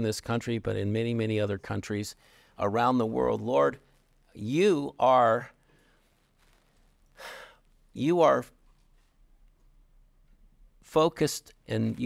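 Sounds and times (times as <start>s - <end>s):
man breathing in: 2.2s - 2.6s, 7.2s - 7.7s.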